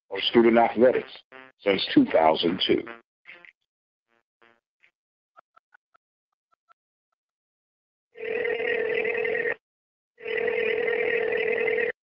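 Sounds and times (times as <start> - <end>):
buzzing electronic tones: 1.0 - 1.8, 4.1 - 4.6.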